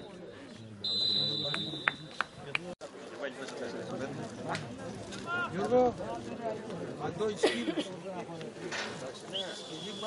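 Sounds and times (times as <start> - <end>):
referee's whistle blast: 0.8 - 2.1, 9.4 - 10.0.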